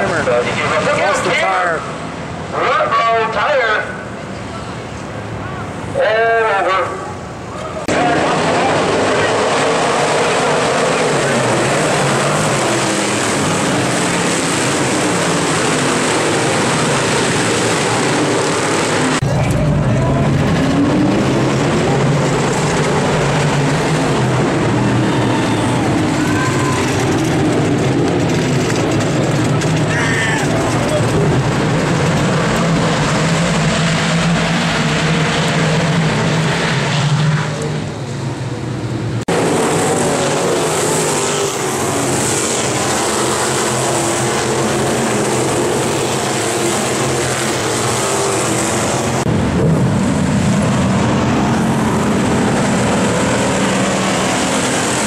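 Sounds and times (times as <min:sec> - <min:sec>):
race cars at speed: 0:00.0 - 0:55.0
sprint cars racing past: 0:00.0 - 0:55.0
people's voices: 0:02.5 - 0:09.5, 0:19.2 - 0:21.1, 0:29.2 - 0:31.4.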